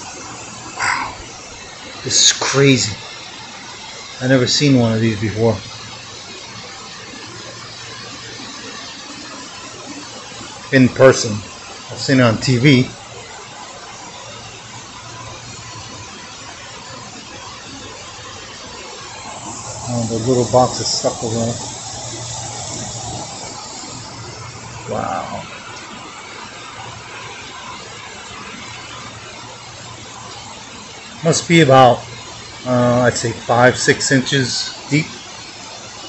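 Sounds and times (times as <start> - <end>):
floodwater running: 0.0 - 36.0
low steady hum: 0.0 - 36.0
rain falling: 0.0 - 36.0.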